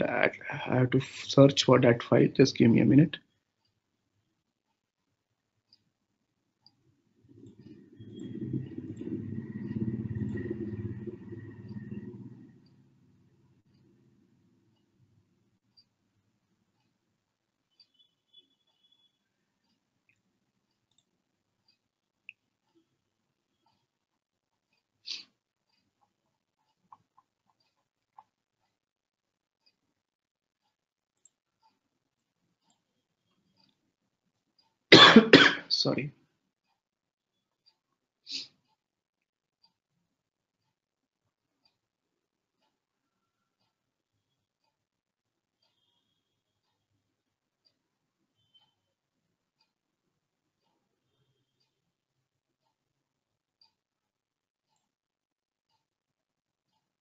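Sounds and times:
person speaking: 0.0s - 3.2s
low rumble: 7.3s - 12.7s
person coughing: 35.0s - 35.7s.

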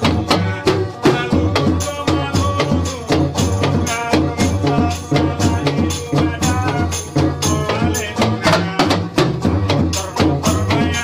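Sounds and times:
dance music with quick drum beat: 0.0s - 11.0s.

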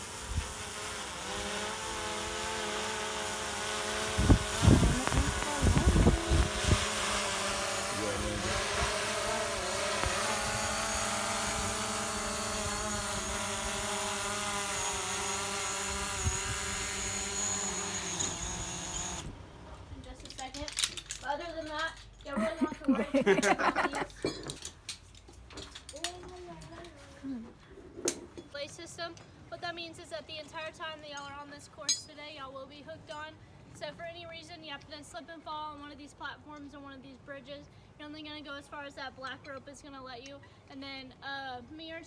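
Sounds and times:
drone propellers whining: 0.0s - 19.4s
low thumps: 4.1s - 13.1s.

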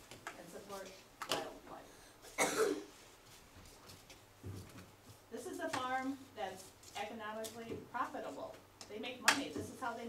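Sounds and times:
person coughing: 2.3s - 2.9s.

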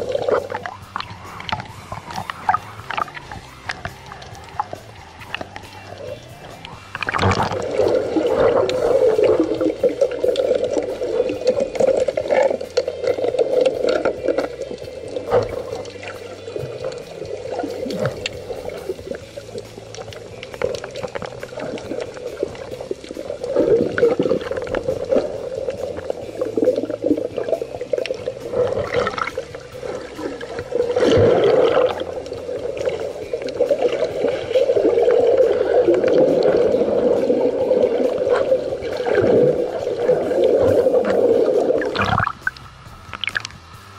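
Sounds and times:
muffled underwater rushing: 0.0s - 43.9s
underwater clicks and bubbling: 0.0s - 43.9s.

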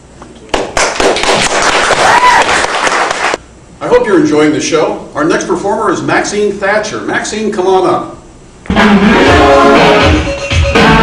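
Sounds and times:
audience applause: 0.6s - 3.4s.

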